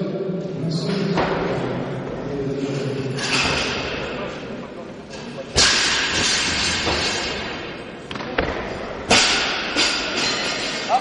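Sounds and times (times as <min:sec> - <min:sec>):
people talking: 0:00.0 - 0:05.8, 0:10.0 - 0:11.0
loud crack echoing in hall: 0:00.6 - 0:11.0.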